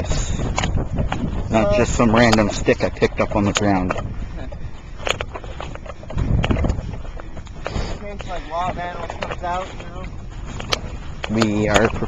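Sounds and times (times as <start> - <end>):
wind rumble on microphone: 0.0 - 12.0
person speaking: 1.5 - 4.0, 7.7 - 10.1.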